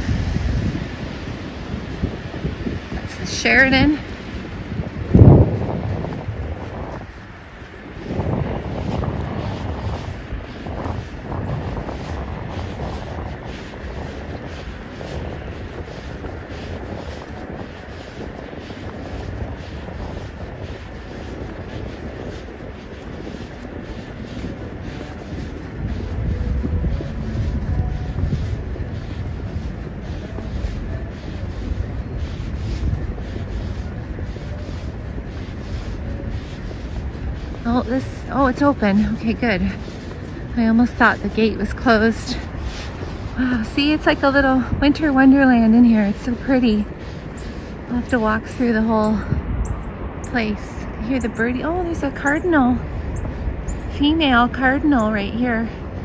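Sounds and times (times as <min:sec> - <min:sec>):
footsteps on snow: 0:00.0 - 0:56.0
wind rumbling on microphone: 0:00.0 - 0:56.0.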